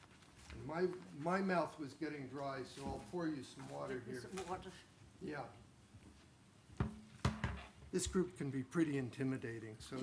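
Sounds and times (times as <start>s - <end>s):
knocks on a lectern: 6.8s - 7.7s.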